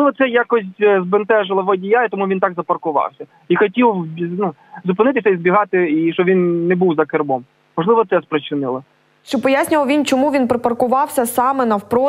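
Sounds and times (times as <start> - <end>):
person talking: 0.0 - 10.4.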